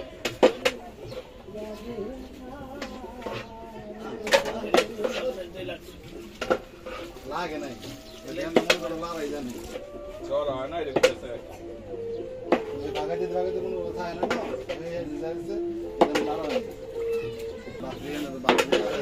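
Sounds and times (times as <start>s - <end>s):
people talking: 12.8s - 19.0s.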